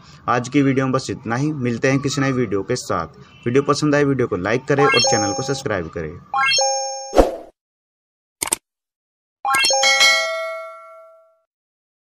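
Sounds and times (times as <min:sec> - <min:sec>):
notification bell chime: 0:09.5 - 0:11.4.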